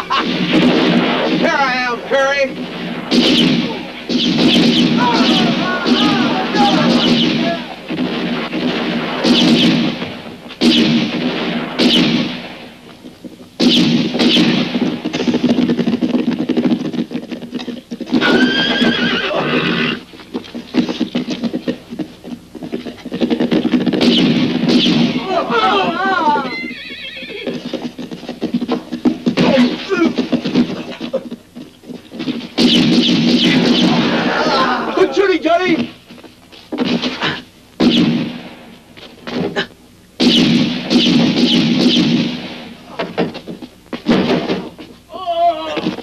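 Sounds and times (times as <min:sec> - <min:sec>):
gunshot cracks: 0:00.1 - 0:01.9, 0:02.6 - 0:12.6, 0:13.6 - 0:15.4, 0:24.0 - 0:25.4, 0:32.6 - 0:34.5, 0:37.8 - 0:38.6, 0:40.2 - 0:42.8
horses moving about: 0:14.6 - 0:32.7, 0:42.8 - 0:46.0
horses neighing: 0:17.6 - 0:20.1, 0:25.2 - 0:28.6
crowd of voices: 0:34.0 - 0:35.4.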